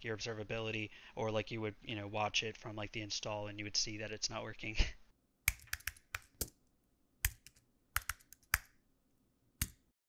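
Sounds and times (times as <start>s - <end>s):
keyboard keys clicking: 5.5s - 6.5s, 7.3s - 8.7s.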